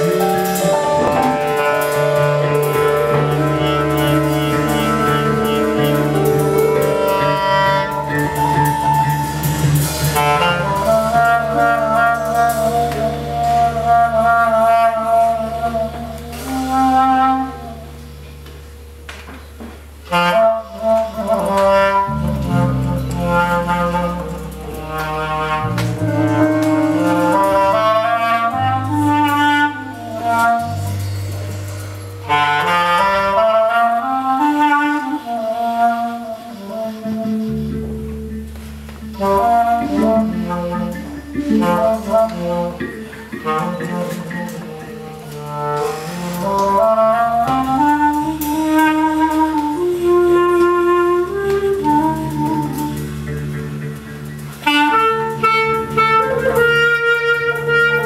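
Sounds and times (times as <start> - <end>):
trumpet: 0.0 - 18.2, 20.0 - 58.0
clarinet: 0.0 - 58.0
drums: 0.0 - 58.0
electric bass: 0.0 - 58.0.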